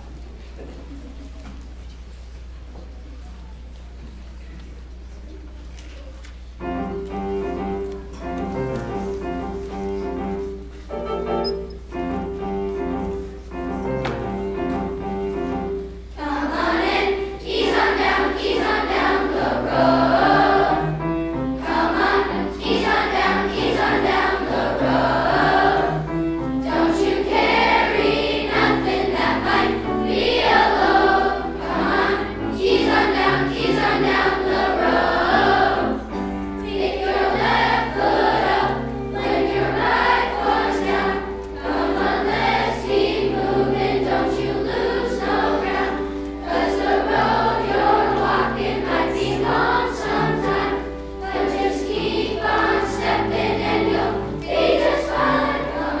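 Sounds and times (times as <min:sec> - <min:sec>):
grand piano accompaniment: 0:06.3 - 0:56.0
children's choir singing: 0:06.6 - 0:56.0.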